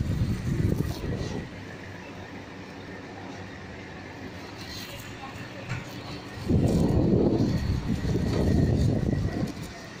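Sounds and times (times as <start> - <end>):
fan wind buffeting microphone: 0.0 - 10.0.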